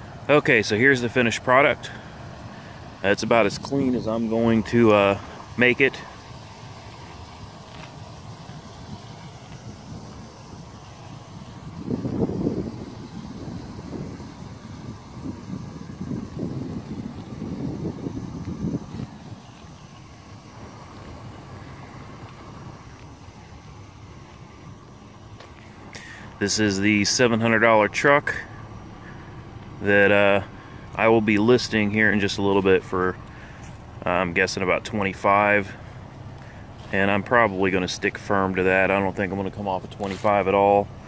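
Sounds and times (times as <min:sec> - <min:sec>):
wind buffeting microphone: 0:08.0 - 0:25.3.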